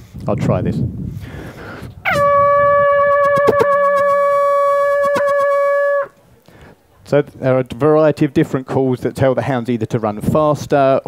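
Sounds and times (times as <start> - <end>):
hunting horn long note: 2.1 - 6.1.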